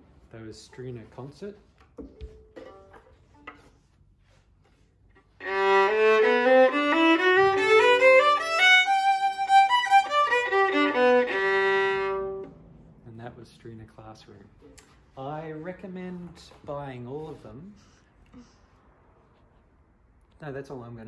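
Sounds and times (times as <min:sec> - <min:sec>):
bowed violin phrase: 0:05.4 - 0:12.7.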